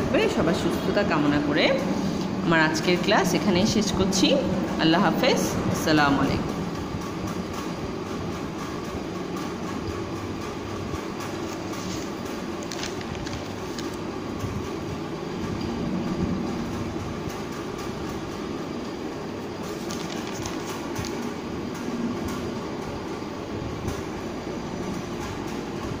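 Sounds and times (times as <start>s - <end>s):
low rumbling background noise: 0.0s - 26.0s.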